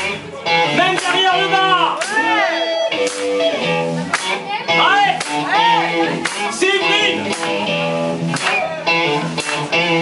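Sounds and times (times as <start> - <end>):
live band playing: 0.0 - 10.0
strummed electric guitar chords: 0.0 - 10.0.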